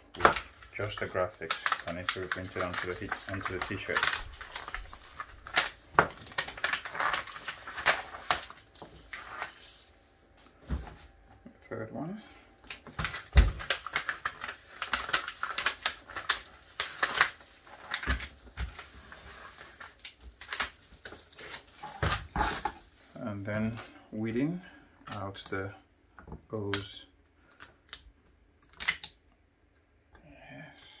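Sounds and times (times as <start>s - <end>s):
vinyl peeling with crackles: 0.2s - 10.6s, 12.6s - 23.9s.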